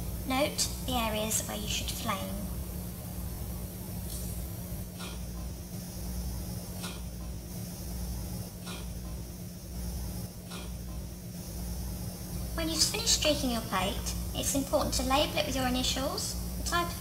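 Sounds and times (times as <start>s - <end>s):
constant hiss: 0.0s - 17.0s
low hum: 0.0s - 17.0s.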